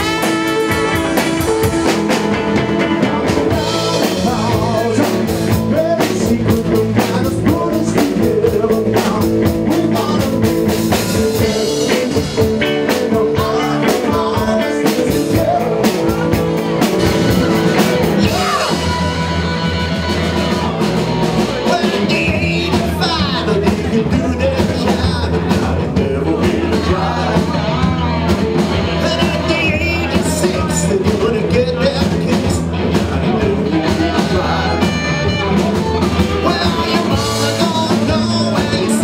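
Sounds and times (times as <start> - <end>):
bass guitar: 0.0 - 39.0
drum kit beat: 0.0 - 39.0
electric guitars: 0.0 - 39.0
man singing into microphone: 3.2 - 16.4, 18.2 - 19.7, 21.5 - 28.1, 28.9 - 39.0.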